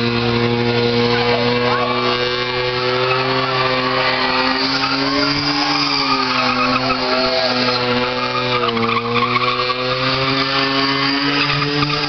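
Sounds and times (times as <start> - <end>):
car engine revving high: 0.0 - 12.0
tyres screeching: 0.0 - 12.0.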